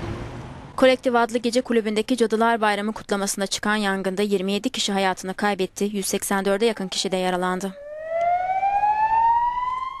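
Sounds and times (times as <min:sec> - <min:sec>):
ambulance siren wailing: 0:06.7 - 0:10.0.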